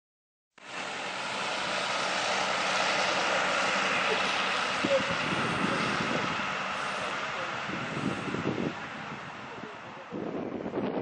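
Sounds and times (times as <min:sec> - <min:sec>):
engine drone: 0:00.6 - 0:11.0.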